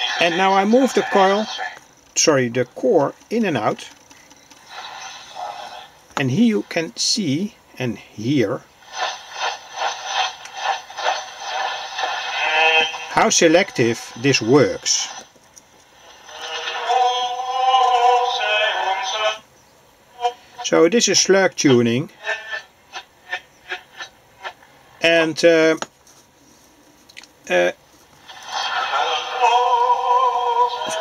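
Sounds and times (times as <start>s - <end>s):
faint radio hiss: 0.0s - 31.0s.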